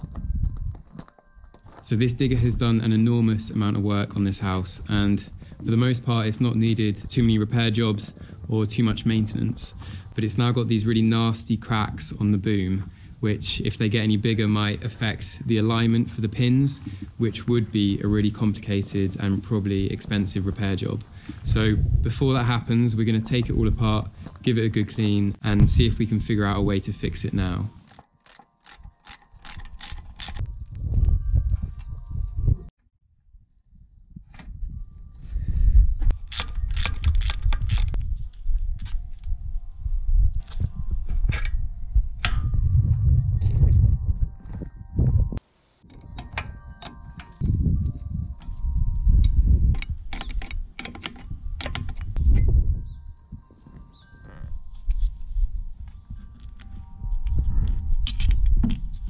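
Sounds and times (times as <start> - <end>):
ratchet clicking: 27.9 - 30.4, 36.3 - 38.0
ringing tones from steel: 45.8 - 47.8.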